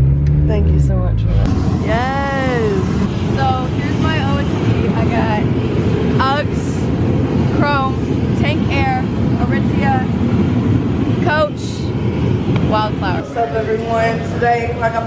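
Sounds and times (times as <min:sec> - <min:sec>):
loud low rumble: 0:00.0 - 0:15.0.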